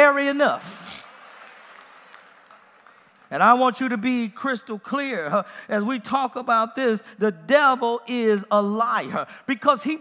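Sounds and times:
congregation clapping: 0.0 - 4.3.

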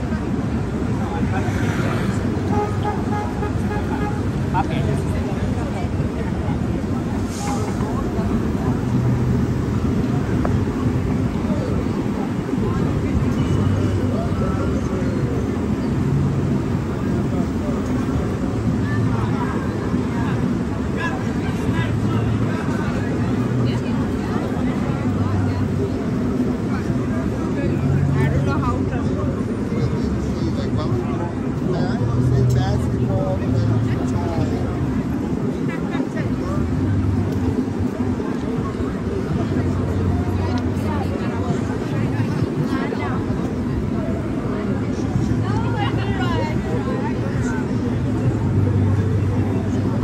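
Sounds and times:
pedestrians chatting: 0.0 - 50.0
traffic rumble: 0.0 - 50.0.

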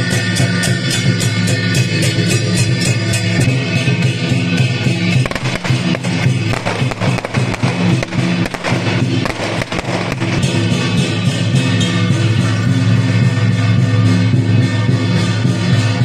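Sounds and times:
loud music: 0.0 - 16.0
firecrackers crackling: 3.4 - 12.6.

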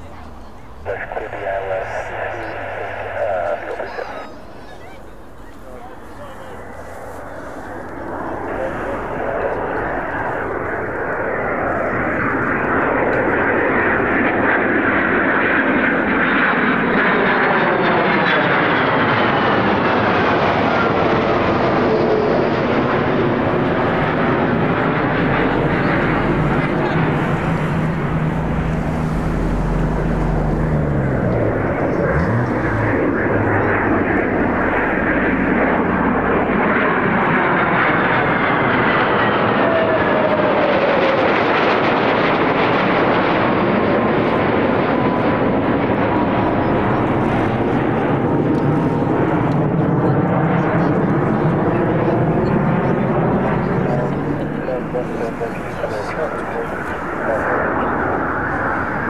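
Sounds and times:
jet engine whine falling in pitch: 0.0 - 59.0
jet fighters roaring overhead: 0.0 - 59.0.

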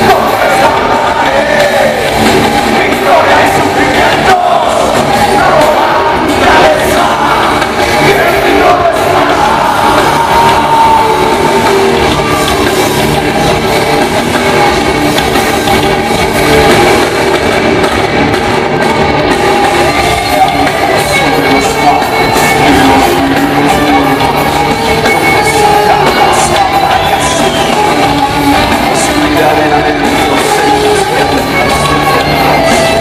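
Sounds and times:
person singing: 0.0 - 12.5, 19.7 - 33.0
live rock band playing: 0.0 - 33.0.

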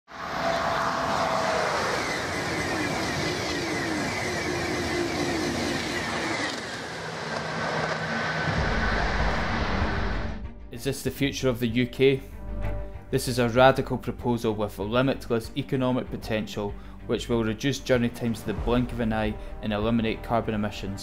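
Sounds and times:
high-speed train passing: 0.1 - 10.4
faint whining tones: 0.2 - 10.0
deep rumble: 0.8 - 10.8.

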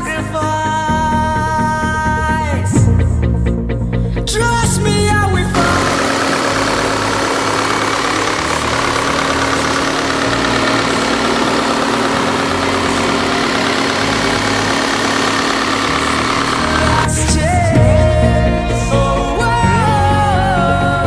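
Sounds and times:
car engine idling: 5.6 - 17.6.

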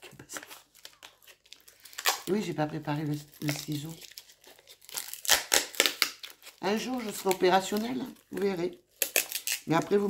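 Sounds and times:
packaging crinkling and tearing: 0.0 - 10.0.

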